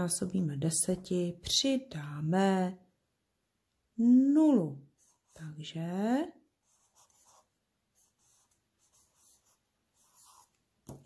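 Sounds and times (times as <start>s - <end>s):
marker scratching on paper: 4.9s - 5.5s, 6.6s - 11.0s.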